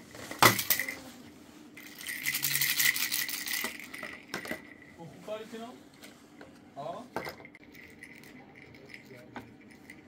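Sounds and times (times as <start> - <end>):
plastic toy rattling and clicking: 1.8 - 4.8.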